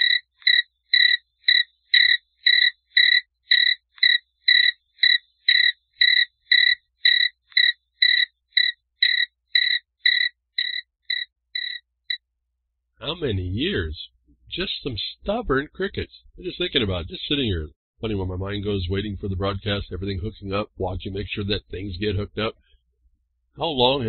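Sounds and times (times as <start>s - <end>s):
crickets chirping: 0.0s - 11.8s.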